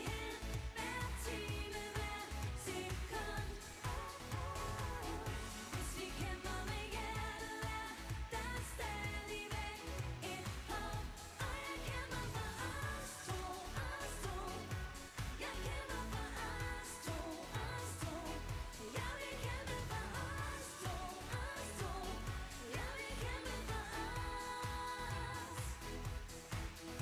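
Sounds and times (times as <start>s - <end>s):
dance-pop backing track: 0.0s - 27.0s
women singing pop: 0.0s - 27.0s.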